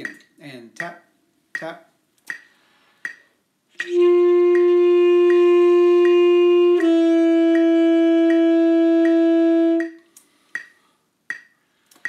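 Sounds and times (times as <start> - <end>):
metronome clicking: 0.0 - 12.0
held wind instrument note: 3.7 - 10.0.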